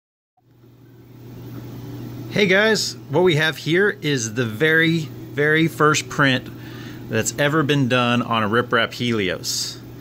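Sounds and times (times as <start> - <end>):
low hum with hiss: 0.4 - 10.0.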